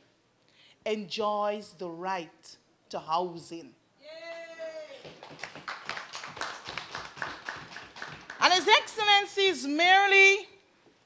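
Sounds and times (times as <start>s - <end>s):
audience clapping: 4.9s - 8.9s.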